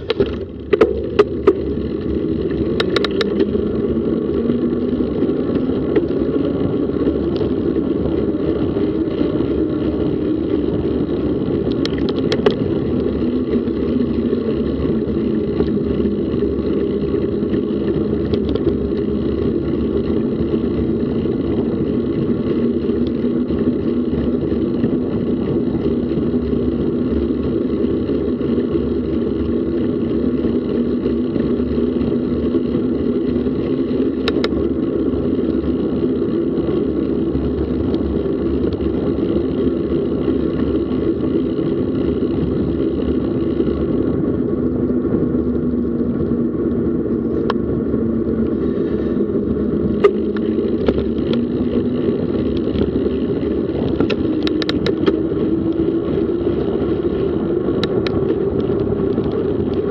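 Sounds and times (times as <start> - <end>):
road noise while cycling: 0.0 - 59.9
wind rumble: 0.0 - 59.9.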